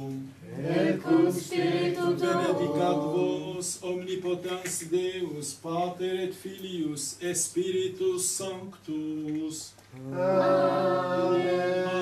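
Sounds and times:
unaccompanied chant singing: 0.0s - 4.3s, 10.0s - 12.0s.

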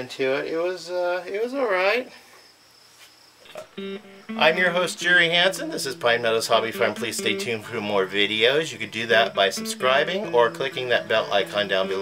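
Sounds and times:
faint high-pitched tone: 3.5s - 12.0s.

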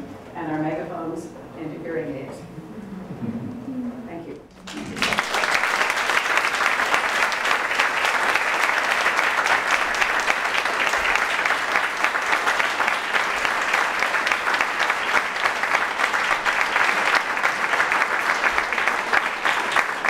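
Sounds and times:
audience applauding: 4.5s - 20.0s.

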